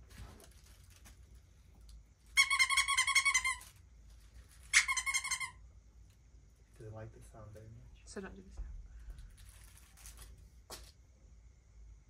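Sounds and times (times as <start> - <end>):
squeaky dog toy: 2.3 - 3.8, 4.6 - 5.6.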